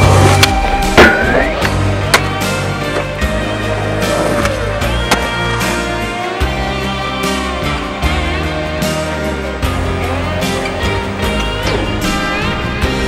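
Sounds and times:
music with sustained tones: 0:00.0 - 0:13.0
skateboard clacking on concrete: 0:04.1 - 0:05.4.

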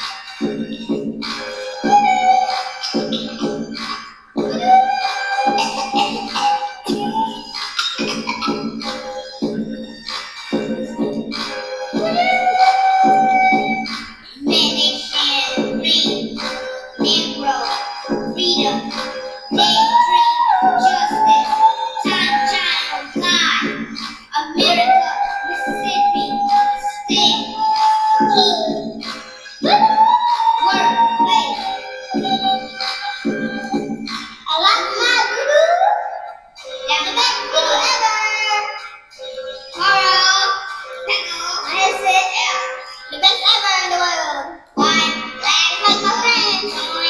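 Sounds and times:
backing music: 0:00.0 - 0:47.0
child singing: 0:01.8 - 0:09.6, 0:11.9 - 0:33.8, 0:34.4 - 0:39.0, 0:39.6 - 0:47.0.

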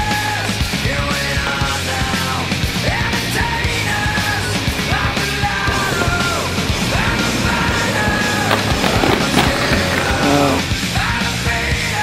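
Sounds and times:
rock music with singing: 0:00.0 - 0:12.0.

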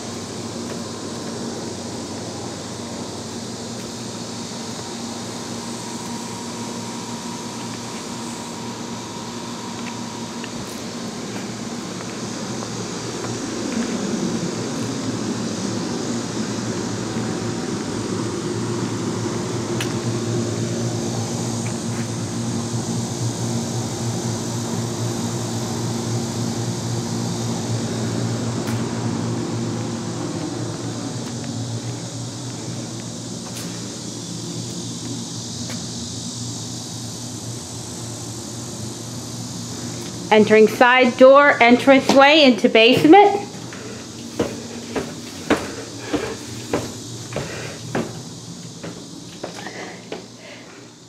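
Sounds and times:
compressor humming: 0:00.0 - 0:51.0
condenser fan rushing: 0:00.0 - 0:51.0.

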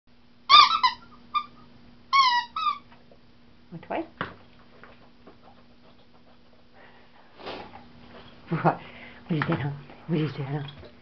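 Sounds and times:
squeaky dog toy squeaks: 0:00.5 - 0:02.9.

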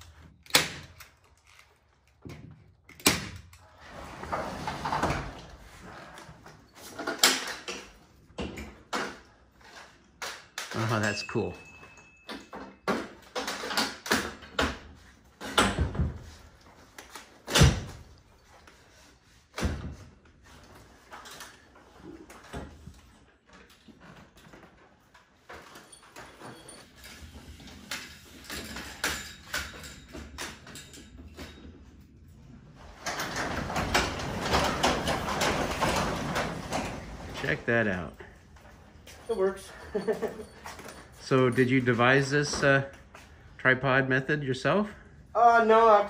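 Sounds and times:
hardware knocks and clatter: 0:10.2 - 0:18.6, 0:22.3 - 0:32.1, 0:32.7 - 0:39.2
garage door opener running: 0:32.5 - 0:38.0.

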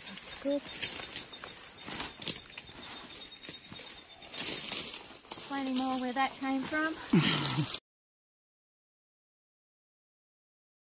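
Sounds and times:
leaves and twigs crackling: 0:00.0 - 0:07.8.

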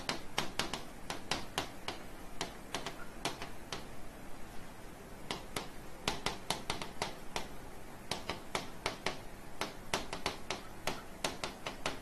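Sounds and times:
stylus tapping on glass: 0:00.0 - 0:03.9, 0:05.3 - 0:12.0.

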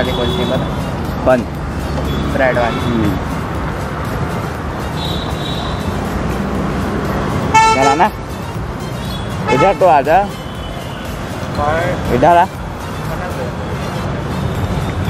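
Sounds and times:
vehicle horn honking: 0:00.0 - 0:00.9, 0:01.9 - 0:03.2, 0:04.9 - 0:06.0, 0:07.5 - 0:08.1, 0:09.0 - 0:11.2
roadside traffic passing: 0:00.0 - 0:15.0.

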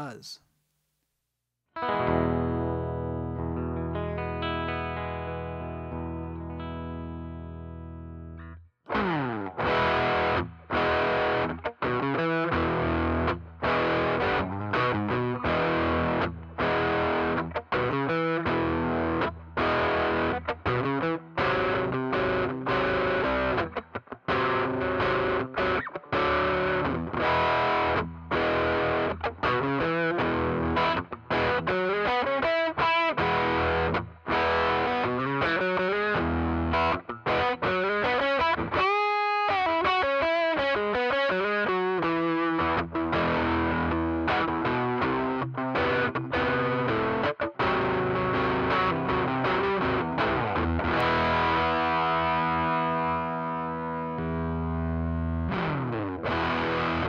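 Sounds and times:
fuzzed electric guitar chords: 0:01.8 - 0:57.0.

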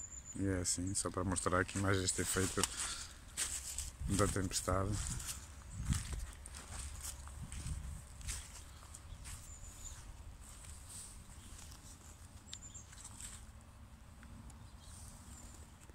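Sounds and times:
footsteps on grass and twigs: 0:01.3 - 0:13.6
wind rumble on microphone: 0:03.9 - 0:11.6.

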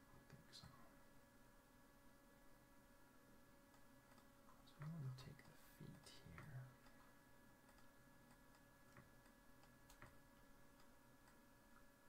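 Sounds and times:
steady electrical hum: 0:00.0 - 0:12.0
computer mouse clicks: 0:03.7 - 0:05.6, 0:07.6 - 0:11.9.

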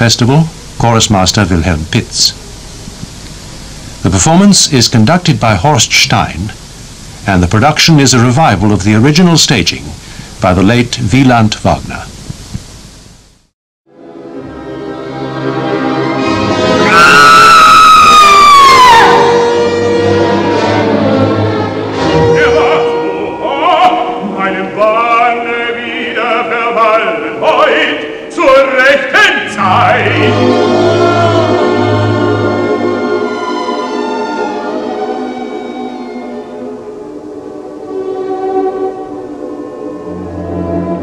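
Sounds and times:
orchestra playing: 0:13.9 - 0:17.4, 0:18.9 - 0:25.4, 0:29.4 - 0:41.0
operatic soprano shrieking: 0:16.7 - 0:19.4, 0:29.1 - 0:32.6.

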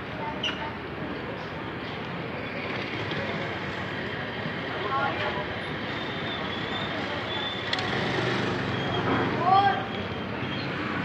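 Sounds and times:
street background hiss and rumble: 0:00.0 - 0:11.0.

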